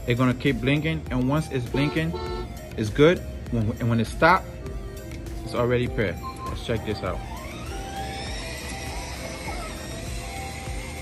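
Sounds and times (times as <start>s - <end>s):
background music: 0.0s - 11.0s
electric motors whining: 4.7s - 11.0s.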